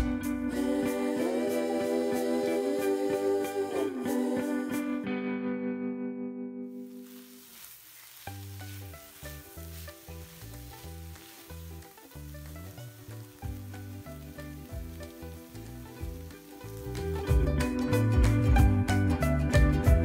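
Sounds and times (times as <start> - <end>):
background music with bass line: 0.0 - 5.0, 9.0 - 20.0
vegetables sizzling in a frying pan: 0.5 - 4.9, 6.7 - 19.0
spatula turning food in pan: 6.8 - 17.6.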